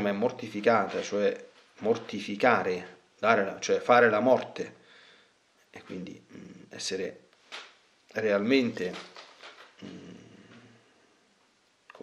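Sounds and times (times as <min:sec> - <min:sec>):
man humming hesitantly: 0:09.8 - 0:10.8.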